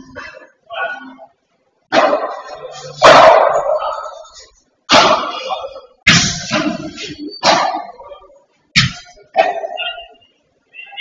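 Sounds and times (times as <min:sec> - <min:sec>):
padel ball hits echoing: 0:04.9 - 0:08.0.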